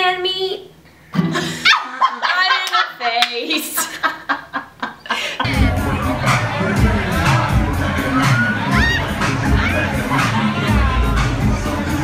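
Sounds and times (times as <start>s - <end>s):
crowd shouting and cheering: 5.4s - 12.0s
dance music with heavy bass beat: 5.5s - 12.0s
shrill rising whoop: 8.1s - 9.9s.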